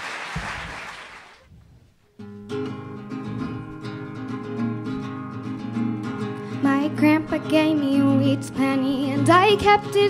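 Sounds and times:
acoustic guitar strumming chords: 2.2 - 10.0.

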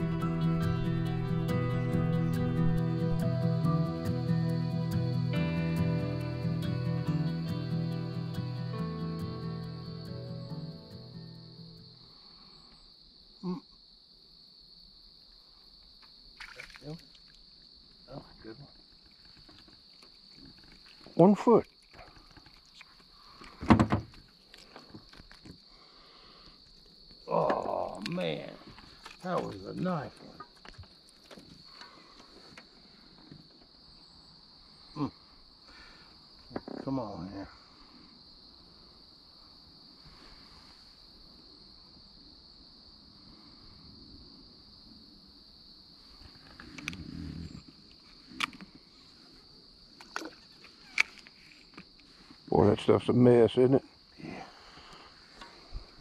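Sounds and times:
high-pitched insect drone: 0.0 - 13.6.

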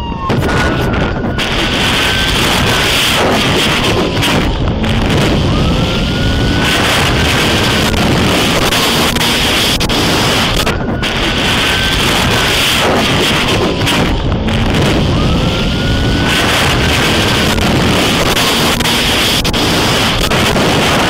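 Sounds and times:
police siren wailing: 0.0 - 21.0
road rumble: 0.0 - 21.0
wind buffeting moving car: 0.0 - 21.0.

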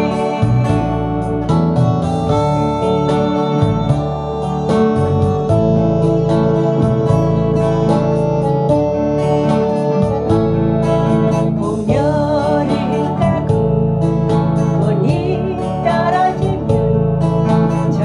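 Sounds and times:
acoustic guitar strumming: 0.0 - 18.0.

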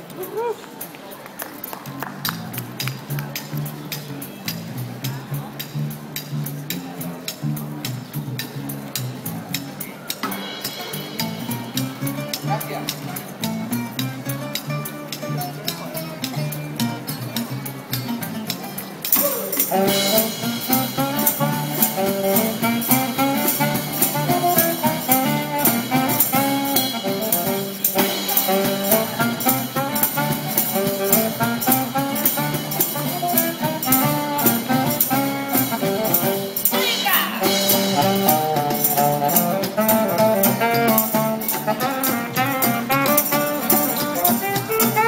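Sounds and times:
plucked double bass: 1.8 - 45.0
percussion strokes: 2.2 - 45.0
acoustic guitar: 3.5 - 45.0
higher melody: 19.1 - 45.0.

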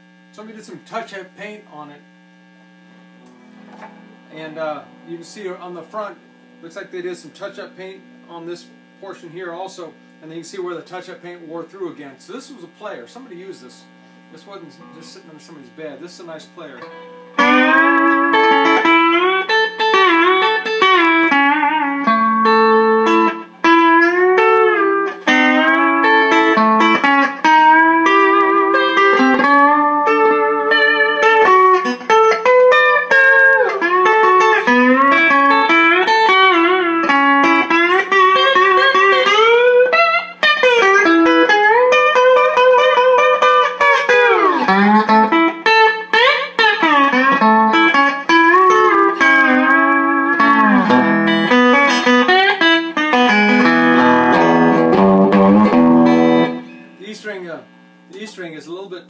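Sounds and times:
steady electrical hum: 0.0 - 59.0
lap steel guitar with slides: 16.8 - 57.0.

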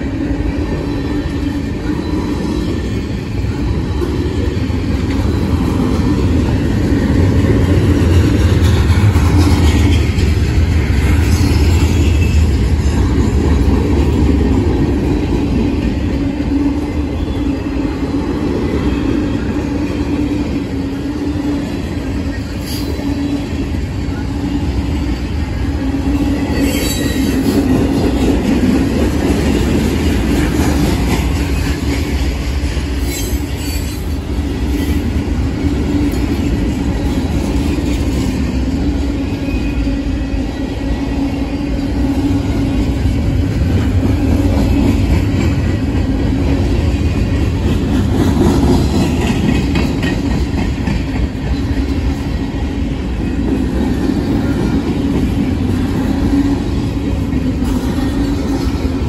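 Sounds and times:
freight train wheels rumbling on rails: 0.0 - 59.0.

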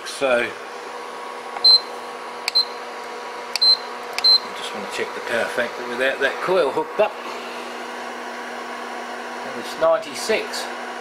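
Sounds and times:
cooling fan whirring: 0.0 - 11.0
low electrical hum: 0.0 - 11.0.

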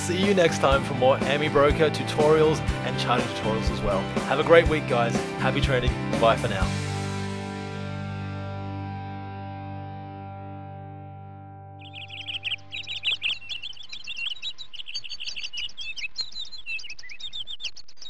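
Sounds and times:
dense chorus of birdsong: 11.8 - 18.0.

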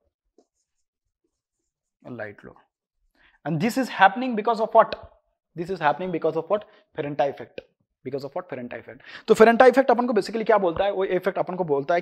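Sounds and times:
marker scratching on whiteboard: 0.4 - 1.9.

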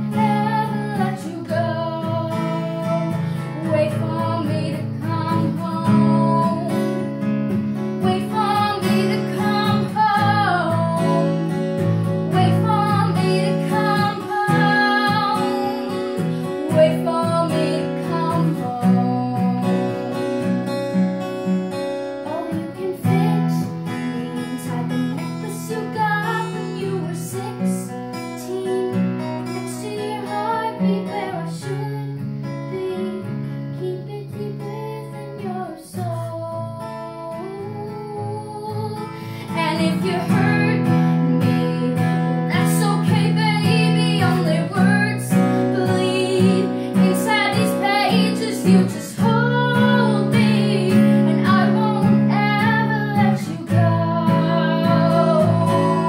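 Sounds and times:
acoustic guitar chords: 0.0 - 56.0.

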